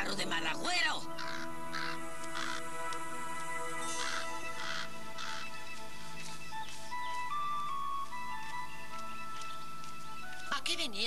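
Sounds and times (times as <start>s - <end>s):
background music: 0.0s - 11.0s
crow cawing: 1.0s - 3.0s, 3.8s - 5.9s.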